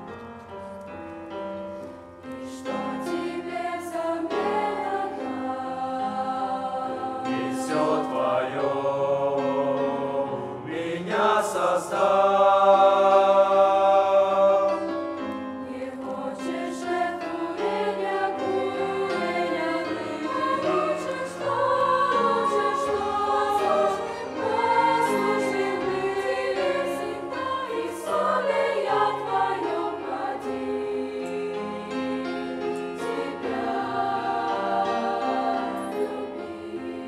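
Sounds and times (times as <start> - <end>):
mixed choir singing a hymn: 2.4 - 37.0.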